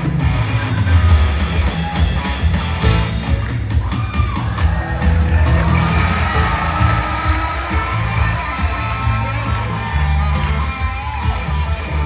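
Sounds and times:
live rock and roll band: 0:00.0 - 0:12.0
audience cheering: 0:00.7 - 0:12.0.

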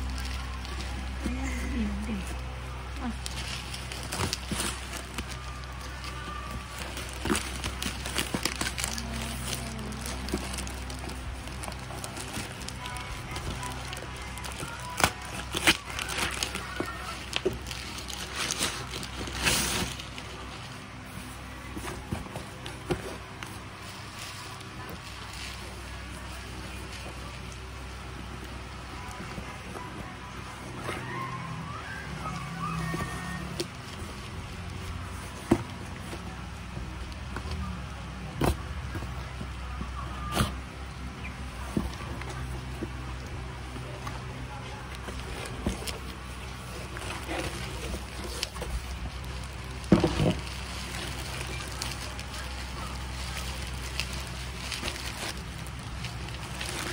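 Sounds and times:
plastic bag crinkling: 0:00.0 - 0:37.2, 0:41.5 - 0:56.9
scissors cutting plastic: 0:03.1 - 0:20.2
cardboard box handled: 0:44.9 - 0:56.9.

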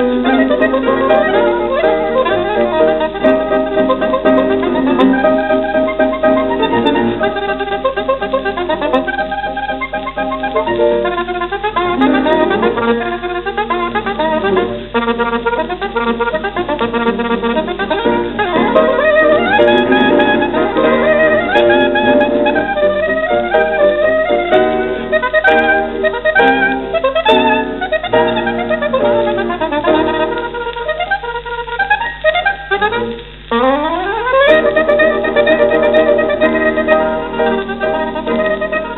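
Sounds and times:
piano accompaniment: 0:00.0 - 0:38.9
saxophone playing fast runs: 0:00.0 - 0:38.9.

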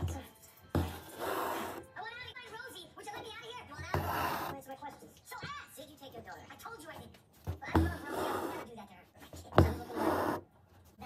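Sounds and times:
floss rasping through fabric: 0:03.8 - 0:04.7.

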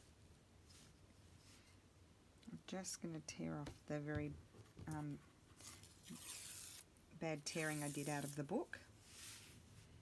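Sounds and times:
paper tearing: 0:05.6 - 0:06.8.

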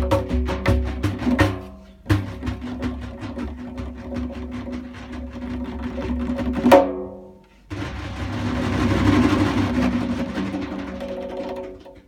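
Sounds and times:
goblet drums played fast: 0:00.0 - 0:07.0, 0:07.8 - 0:11.9.

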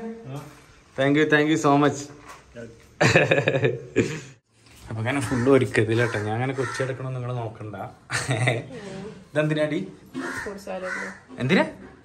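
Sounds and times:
crow cawing: 0:05.2 - 0:07.1, 0:10.1 - 0:11.4.

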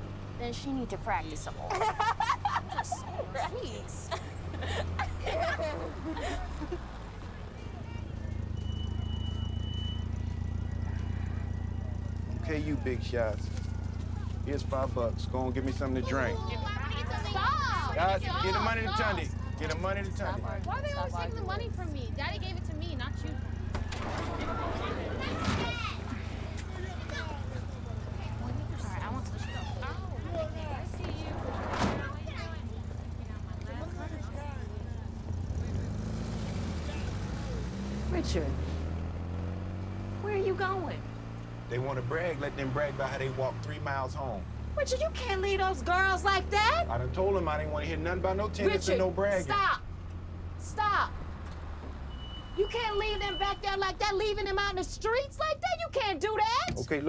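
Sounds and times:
van engine rumble: 0:00.0 - 0:57.0.

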